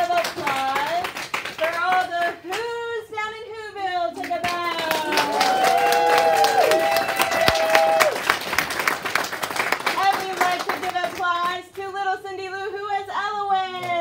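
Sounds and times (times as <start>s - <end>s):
audience applauding: 0.0s - 2.0s, 4.5s - 11.5s.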